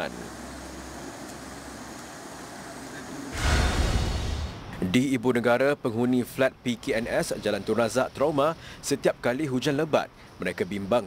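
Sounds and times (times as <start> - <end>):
steady low hum and hiss: 0.0 - 11.0.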